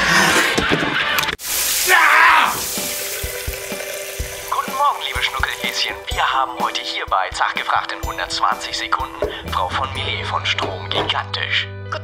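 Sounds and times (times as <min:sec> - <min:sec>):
water running into steel sink: 0:01.4 - 0:06.2
person speaking: 0:04.5 - 0:11.6.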